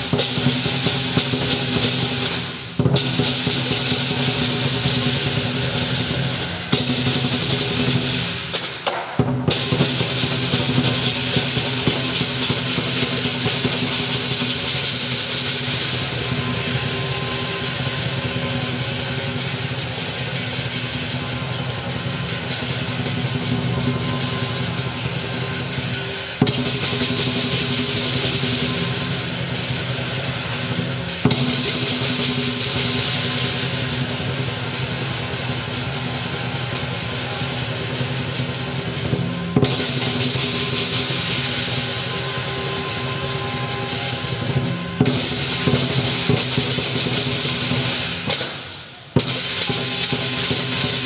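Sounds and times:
crashing cymbals: 0:00.0 - 0:51.0
lion drum rolls: 0:00.0 - 0:51.0
ringing gong: 0:09.7 - 0:48.0.

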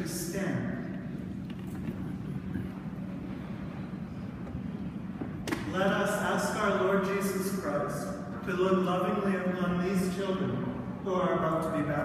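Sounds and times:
crowd shuffling and rustling: 0:00.8 - 0:05.8.

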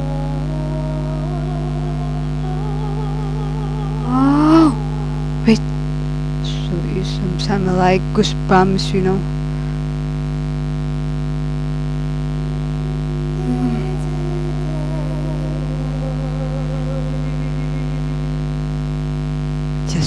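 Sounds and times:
electrical hum: 0:00.0 - 0:20.0
faint muffled melody: 0:12.8 - 0:18.8.

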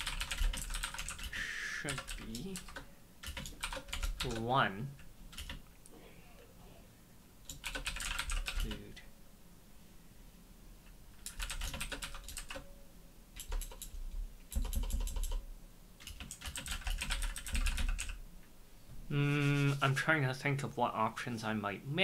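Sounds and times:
typing on keyboard: 0:00.0 - 0:04.4, 0:05.3 - 0:05.6, 0:07.5 - 0:08.8, 0:11.2 - 0:12.7, 0:13.4 - 0:15.4, 0:16.0 - 0:18.2.

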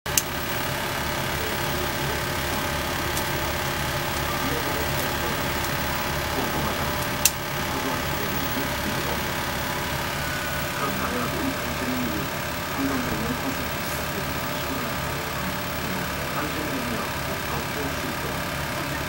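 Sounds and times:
sharp clicks: 0:00.1 - 0:08.4
small motor humming: 0:00.1 - 0:19.0.

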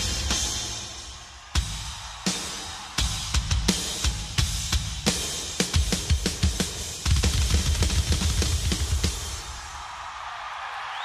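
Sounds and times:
snare and cymbal hits: 0:00.0 - 0:09.8.

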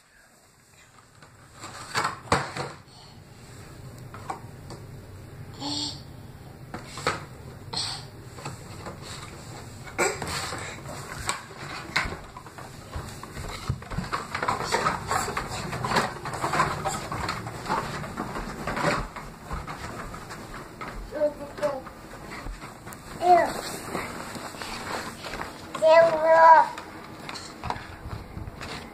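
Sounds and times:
cardboard bottle carrier rattling: 0:11.2 - 0:20.8.

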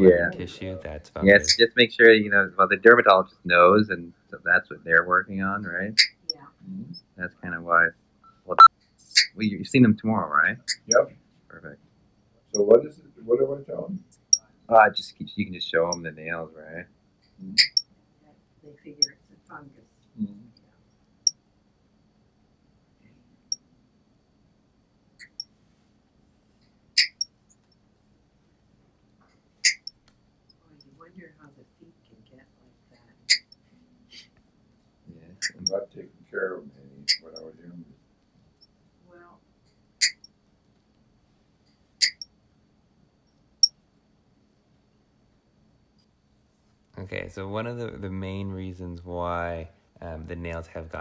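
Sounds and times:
faint low hum: 0:00.0 - 0:51.0.

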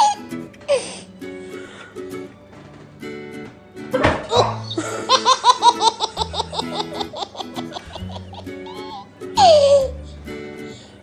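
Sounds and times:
baby laughing: 0:04.3 - 0:10.0.

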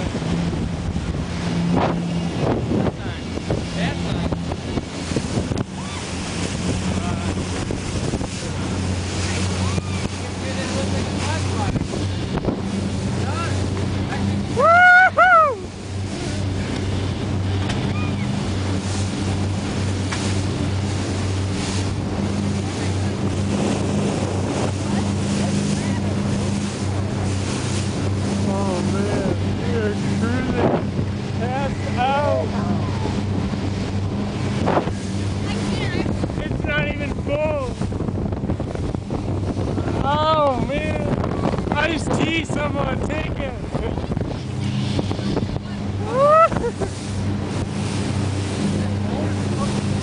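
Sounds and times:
boat engine droning: 0:00.0 - 0:50.0
rush of wind and water: 0:00.0 - 0:50.0.

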